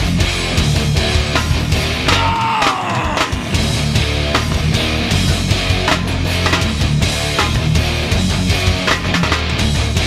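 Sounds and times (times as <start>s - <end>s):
distorted electric guitar chords: 0.0s - 10.0s
steady drum beat: 0.0s - 10.0s.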